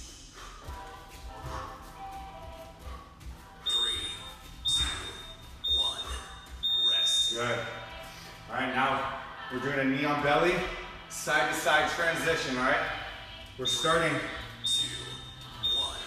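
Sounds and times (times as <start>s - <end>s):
background music: 0.0s - 16.0s
interval timer beeps: 2.1s - 8.0s, 13.6s - 16.0s.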